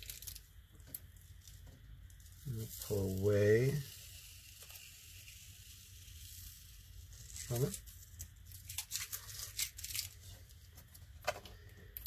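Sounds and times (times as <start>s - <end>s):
masking tape peeling off paper: 0.0s - 11.0s.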